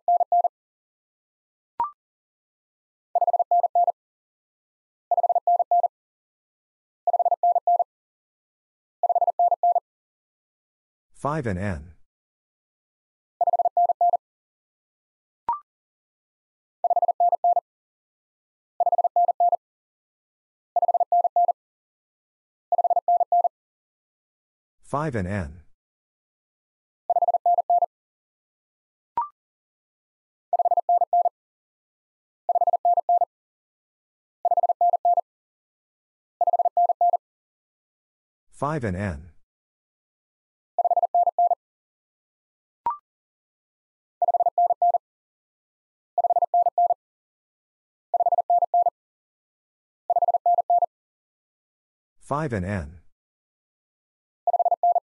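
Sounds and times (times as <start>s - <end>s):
morse code beeping tone: 0.1s - 0.5s, 27.2s - 27.9s, 30.6s - 31.3s, 32.5s - 33.3s, 34.5s - 35.2s, 40.8s - 41.6s, 44.2s - 45.0s, 46.2s - 46.9s, 48.2s - 48.9s, 50.1s - 50.9s, 54.5s - 55.0s.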